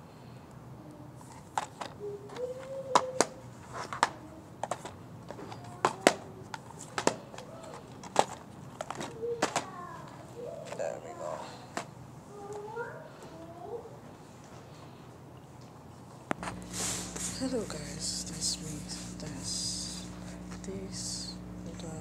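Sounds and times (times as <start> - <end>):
faint voices: 16.4 - 22.0.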